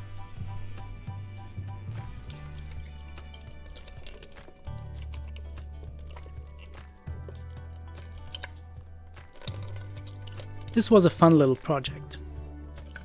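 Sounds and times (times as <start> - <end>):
background music with bass: 0.0 - 13.0.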